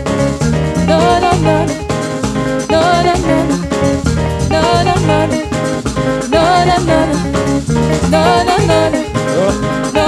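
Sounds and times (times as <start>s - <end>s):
bass line: 0.0s - 10.0s
drums: 0.0s - 10.0s
electric guitar: 0.0s - 10.0s
keyboard: 0.0s - 10.0s
women singing: 0.8s - 2.0s, 2.6s - 3.6s, 4.5s - 5.6s, 6.2s - 9.2s.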